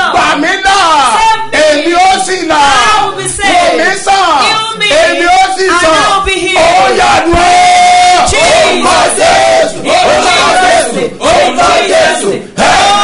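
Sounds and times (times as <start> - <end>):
man shouting prayer: 0.0 - 8.9.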